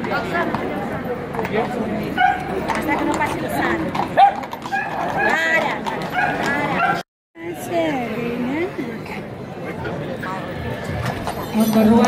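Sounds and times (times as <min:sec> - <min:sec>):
crowd chatter: 0:00.0 - 0:12.0
dog barking: 0:02.2 - 0:02.5, 0:04.2 - 0:05.4, 0:06.1 - 0:07.0.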